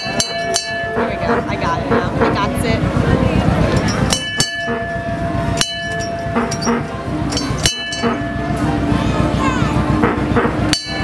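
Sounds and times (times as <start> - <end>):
vehicle bell clanging: 0.0 - 2.4, 3.7 - 9.4, 10.6 - 11.0
vehicle engine rumble: 0.0 - 11.0.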